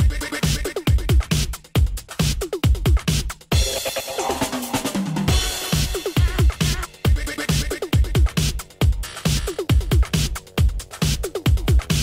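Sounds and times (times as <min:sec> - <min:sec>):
drum-roll fill: 0:00.0 - 0:12.0
electronic dance music: 0:00.0 - 0:12.0.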